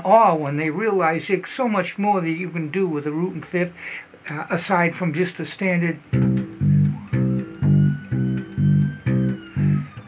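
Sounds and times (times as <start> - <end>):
electric bass plucked notes: 6.0 - 10.0.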